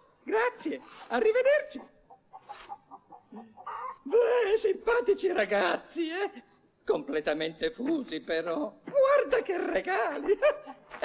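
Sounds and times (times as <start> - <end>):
chickens clucking: 0.0 - 4.2.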